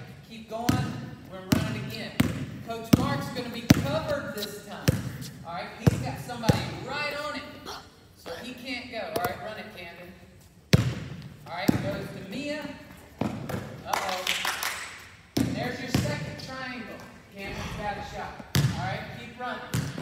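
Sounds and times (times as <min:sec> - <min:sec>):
basketball bouncing on wood floor: 0:00.6 - 0:04.1, 0:04.8 - 0:05.2, 0:05.8 - 0:06.7, 0:18.2 - 0:19.1, 0:19.7 - 0:20.0
people talking: 0:15.6 - 0:19.7.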